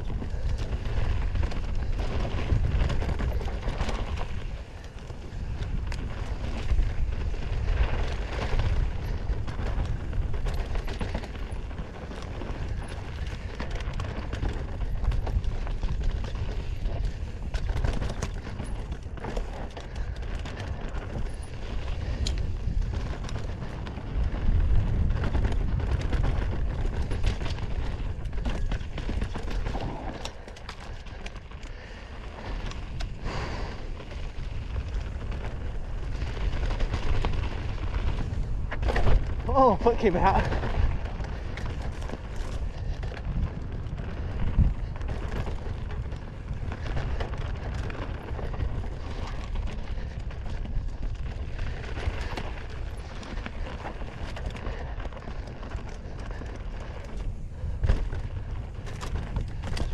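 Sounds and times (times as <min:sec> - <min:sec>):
bike rattling over bumps: 0:00.0 - 0:59.9
tyres on dirt: 0:00.0 - 0:59.9
wind on microphone: 0:00.0 - 0:59.9.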